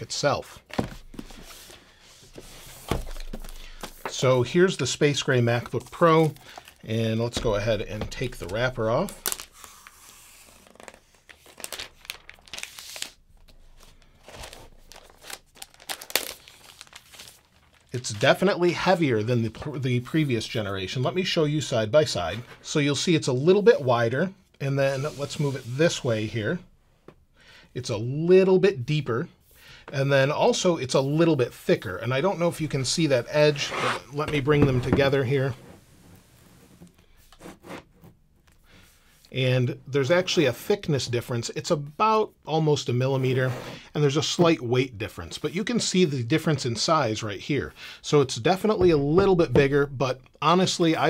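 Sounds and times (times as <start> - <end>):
protective wrapper crinkling and tearing: 8.9 - 18.0.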